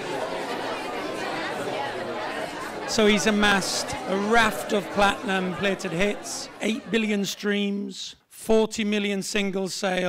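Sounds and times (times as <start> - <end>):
crowd chattering: 0.0 - 8.3.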